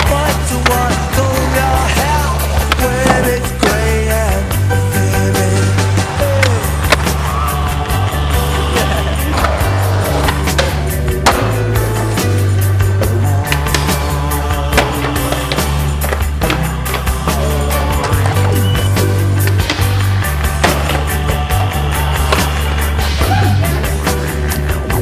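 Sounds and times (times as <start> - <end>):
music with low bass line: 0.0 - 25.0
skateboard wheels rolling on concrete: 0.0 - 25.0.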